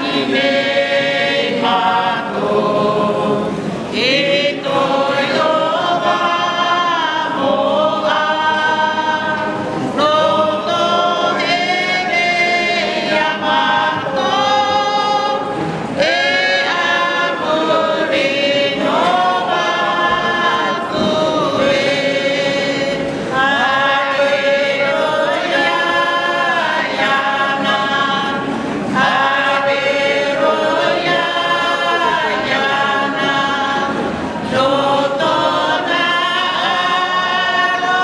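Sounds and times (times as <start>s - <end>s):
mixed group singing a cappella: 0.0s - 38.0s.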